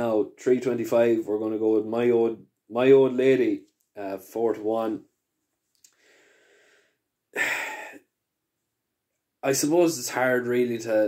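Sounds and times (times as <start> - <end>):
man breathing: 5.8 - 8.0.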